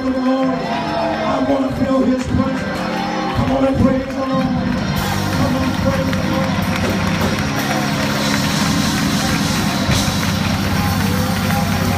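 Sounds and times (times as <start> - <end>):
voices singing praise: 0.0 - 6.7
church band sustained low notes: 0.0 - 11.9
hand clapping: 3.4 - 11.9.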